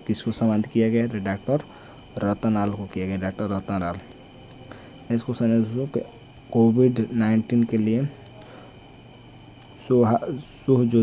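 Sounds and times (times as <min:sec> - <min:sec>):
man speaking: 0:00.0 - 0:04.2, 0:05.1 - 0:08.2, 0:09.8 - 0:11.0
insects chirring: 0:00.0 - 0:11.0.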